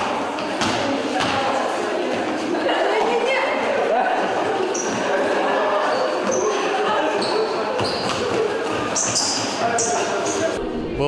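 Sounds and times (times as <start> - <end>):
sneakers squeaking on floor: 4.2 - 10.6.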